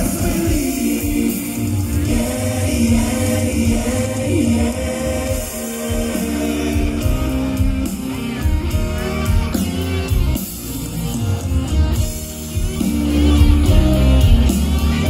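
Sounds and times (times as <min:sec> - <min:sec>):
drums: 0:00.0 - 0:15.0
electric guitar: 0:00.0 - 0:15.0
live rock band playing: 0:00.0 - 0:15.0.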